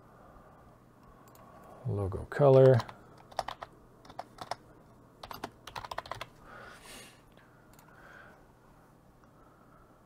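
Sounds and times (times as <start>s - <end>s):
computer keyboard typing: 2.4s - 4.6s, 5.2s - 6.3s.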